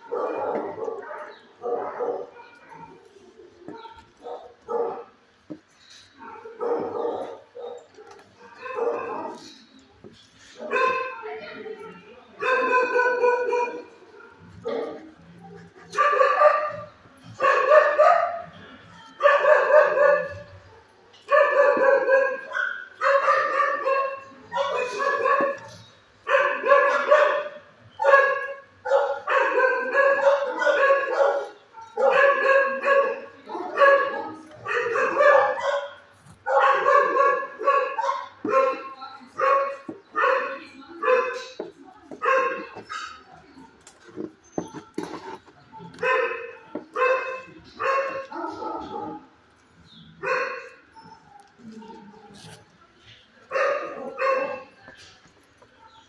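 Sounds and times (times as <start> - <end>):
dog barking: 0.0 - 3.0, 3.7 - 5.1, 6.2 - 9.5, 10.6 - 11.2, 12.4 - 15.1, 15.9 - 18.5, 19.2 - 43.2, 45.9 - 49.3, 50.2 - 51.6, 53.5 - 54.8.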